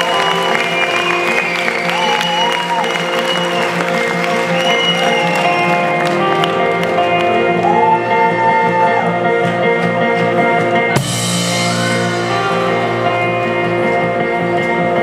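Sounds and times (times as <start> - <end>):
audience applauding and cheering: 0.0 - 9.2, 11.5 - 14.7
live band playing held chords: 0.0 - 15.0.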